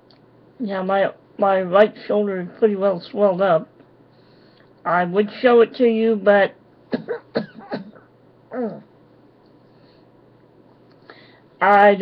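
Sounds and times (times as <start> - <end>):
man coughing: 6.9 - 8.8.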